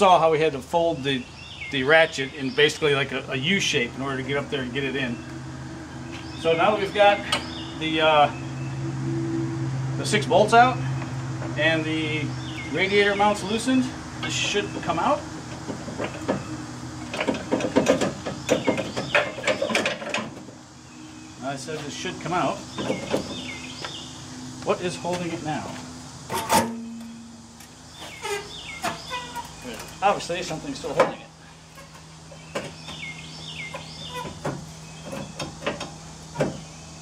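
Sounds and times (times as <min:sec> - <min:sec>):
metal and plastic rattling: 0:14.2 - 0:20.5.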